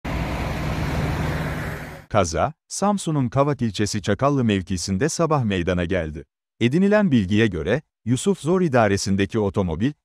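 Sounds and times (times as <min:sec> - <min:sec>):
road traffic noise: 0:00.0 - 0:02.1
vehicle engine running: 0:00.0 - 0:02.1.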